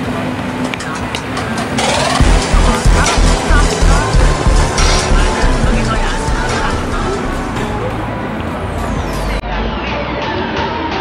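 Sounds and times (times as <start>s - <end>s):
steady background din: 0.0s - 10.5s
indistinct voices: 0.7s - 10.4s.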